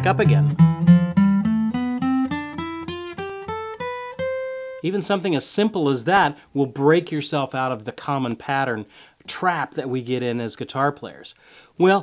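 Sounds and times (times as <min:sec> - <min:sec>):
acoustic guitar playing a scale: 0:00.0 - 0:05.2.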